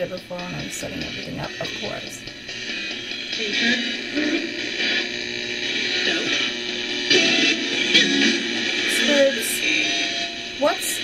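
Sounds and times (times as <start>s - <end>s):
radio static: 0.0s - 11.0s
snatches of broadcast voices: 0.0s - 11.0s.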